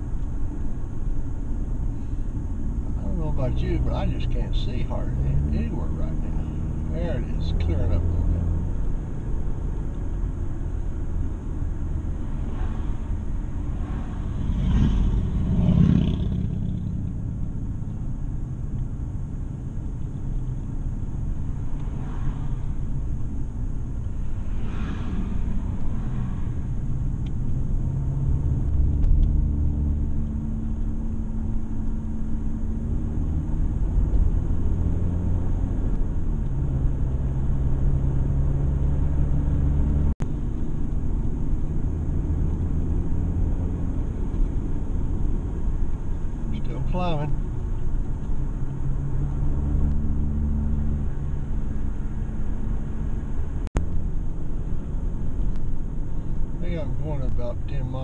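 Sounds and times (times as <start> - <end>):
car engine and tyre rumble: 0.0 - 58.0
oncoming car passing: 2.9 - 17.9, 21.0 - 44.7.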